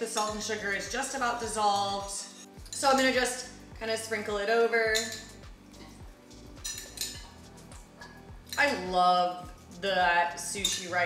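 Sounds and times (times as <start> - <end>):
soft background music with beat: 0.0 - 11.0
spoon clinking on ceramic bowl: 5.0 - 6.0, 6.6 - 7.4.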